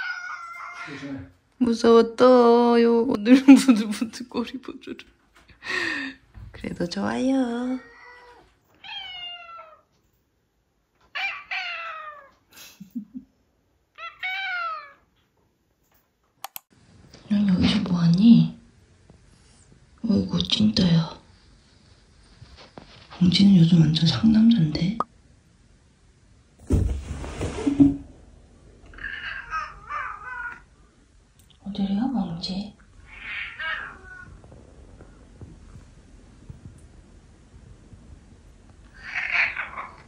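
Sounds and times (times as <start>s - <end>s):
cats meowing: 0.0s - 1.3s, 7.8s - 9.9s, 11.0s - 12.4s, 14.0s - 15.1s, 28.9s - 30.7s, 33.0s - 34.5s, 38.9s - 40.0s.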